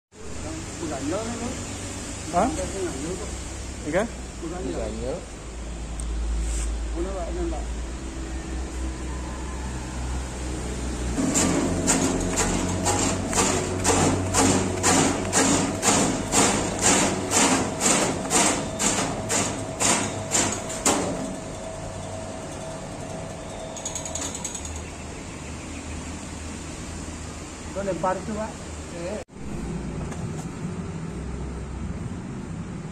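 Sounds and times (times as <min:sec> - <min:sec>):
slicing machine motor: 0:11.2 - 0:21.6.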